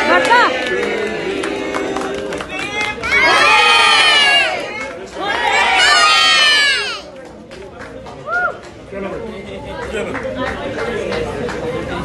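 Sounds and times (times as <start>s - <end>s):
children cheering and shouting: 5.4s - 7.1s.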